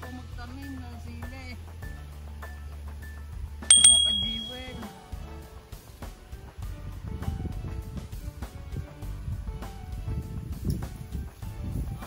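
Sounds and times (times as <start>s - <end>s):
bright metallic bell ding: 3.7s - 4.8s.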